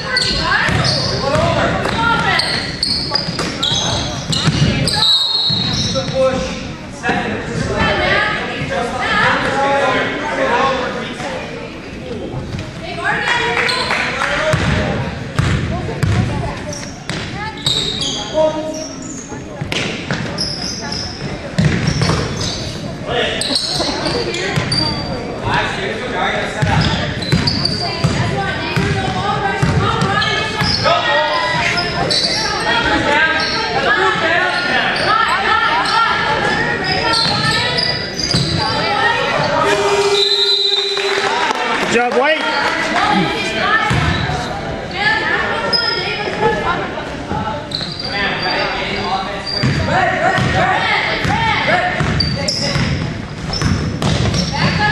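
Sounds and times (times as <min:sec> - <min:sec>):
sneakers squeaking: 0:00.0 - 0:09.6, 0:11.1 - 0:25.8, 0:26.4 - 0:41.5, 0:42.2 - 0:54.9
people calling out: 0:29.0 - 0:41.8.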